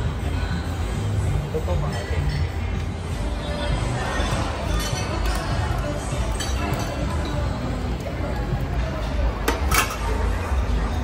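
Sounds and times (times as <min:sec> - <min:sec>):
background chatter: 0:00.0 - 0:11.0
utensils clinking on steel pot: 0:04.6 - 0:07.6, 0:09.0 - 0:10.2.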